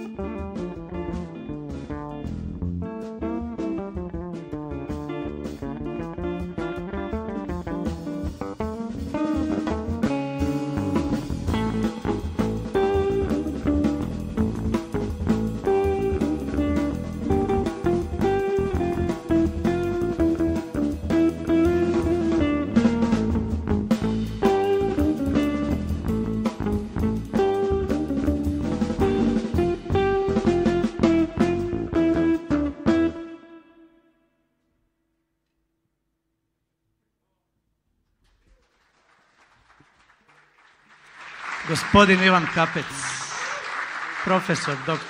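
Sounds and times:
jazz trio playing: 0.0s - 33.4s.

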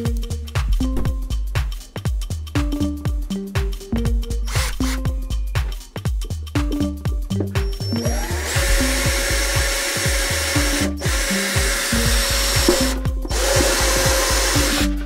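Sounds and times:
electronic music with beat: 0.0s - 15.0s
cordless drill boring plastic: 4.5s - 4.9s, 7.9s - 15.0s.

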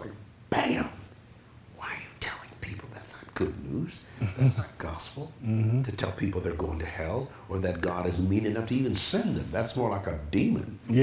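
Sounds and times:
man whispering breath: 1.8s - 4.2s.

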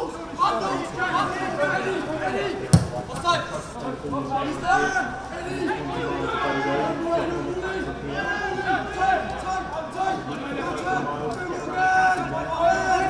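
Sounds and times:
sharp thump: 2.7s - 3.4s.

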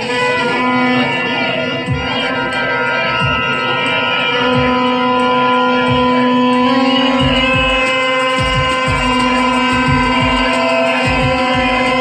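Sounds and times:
droning chord: 0.0s - 12.0s
low drum beat: 1.9s - 2.4s, 3.2s - 12.0s.

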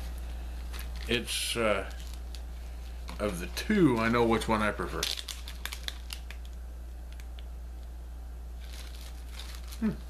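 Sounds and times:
plastic bag crinkling: 0.0s - 7.5s, 8.6s - 10.0s
steady low hum: 0.0s - 10.0s.

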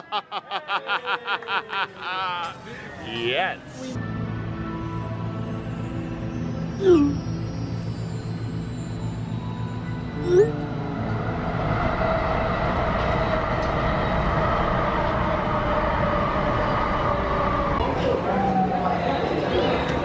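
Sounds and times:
train rumble with faint whine: 10.6s - 20.0s.

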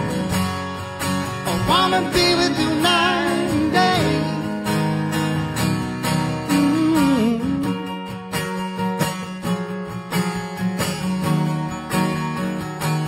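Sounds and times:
acoustic guitars playing: 0.0s - 13.0s.

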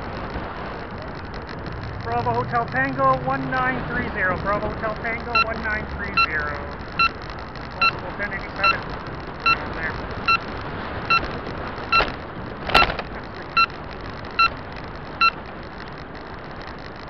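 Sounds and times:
road and wind noise: 0.0s - 17.0s
turn signal beeping: 5.1s - 10.5s, 11.1s - 15.4s.

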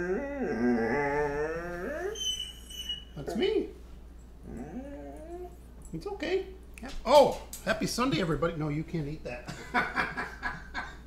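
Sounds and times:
dog whining: 0.0s - 3.5s, 4.4s - 5.8s.

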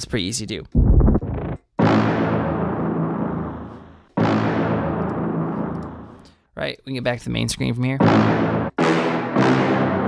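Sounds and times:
brass stabs: 1.2s - 6.3s, 8.0s - 10.0s.

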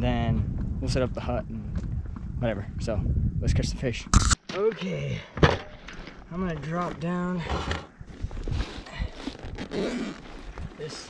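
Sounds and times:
rustling and scraping of case: 5.3s - 11.0s.

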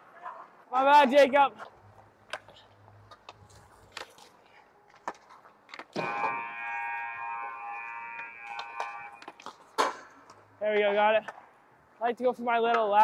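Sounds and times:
sticks and pucks clicking on ice: 2.2s - 6.1s
rink buzzer: 6.0s - 9.3s.

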